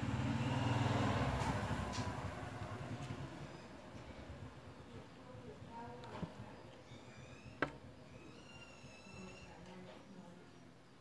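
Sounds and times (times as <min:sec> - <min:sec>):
vehicle engine passing by: 0:00.0 - 0:04.6.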